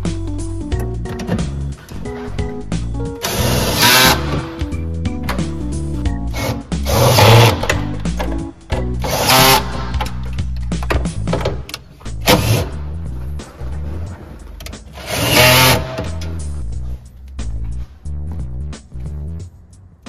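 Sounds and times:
background music: 0.0s - 20.0s.

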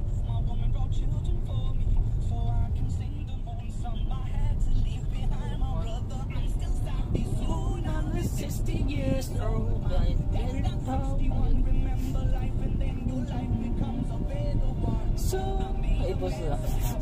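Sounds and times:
car engine and road rumble: 0.0s - 17.0s
music with singing: 0.0s - 17.0s.

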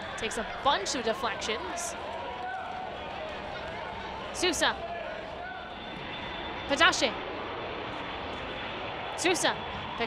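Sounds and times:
stadium crowd ambience: 0.0s - 10.0s.

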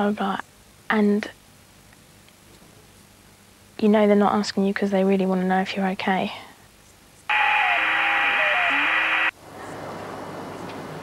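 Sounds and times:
electronic hiss burst with tones: 7.3s - 9.3s.

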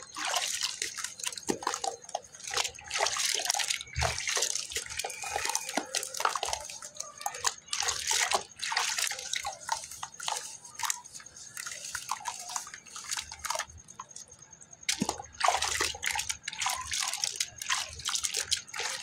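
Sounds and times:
dripping water: 0.0s - 19.0s
hands sloshing slurry in bucket: 0.0s - 19.0s.

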